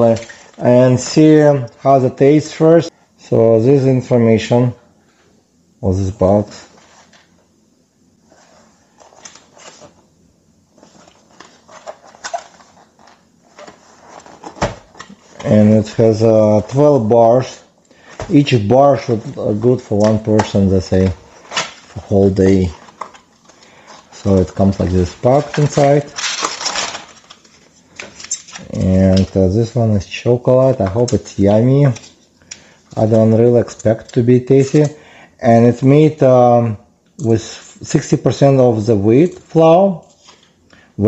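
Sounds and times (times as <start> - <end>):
foil wrapper crinkling: 21.4 - 29.2.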